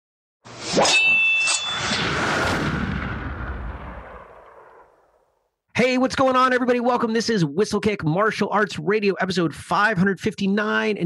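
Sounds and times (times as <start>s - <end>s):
deep cinematic boom: 2.0s - 5.3s.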